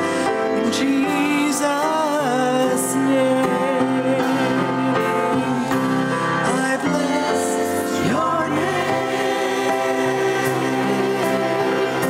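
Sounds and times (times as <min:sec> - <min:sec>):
choir singing a hymn: 0:00.1 - 0:12.0.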